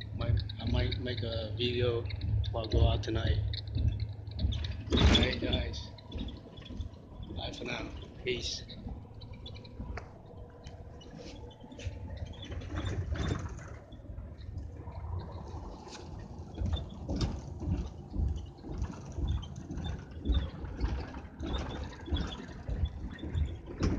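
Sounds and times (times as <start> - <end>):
bus engine and road rumble: 0.0 - 23.9
interior knocks and rattles: 0.0 - 23.9.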